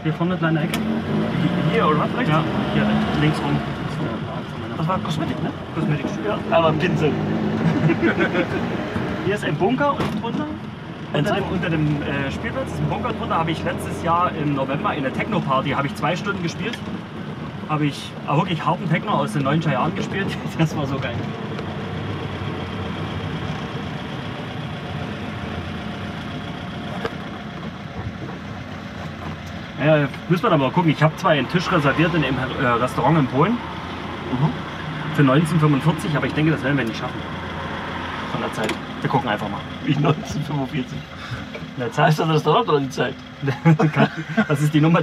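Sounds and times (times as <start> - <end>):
man talking: 0.0 - 8.4, 9.2 - 16.8, 17.7 - 21.2, 29.8 - 33.6, 34.3 - 37.2, 38.3 - 45.0
car engine running inside cabin: 0.0 - 45.0
road noise: 0.0 - 45.0
man laughing: 7.6 - 8.8, 43.4 - 44.9.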